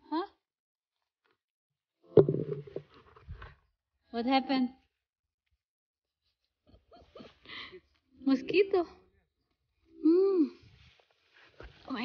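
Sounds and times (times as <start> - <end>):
phone knock on microphone: 2.2 - 2.8
rumbling handling noise: 2.2 - 3.0.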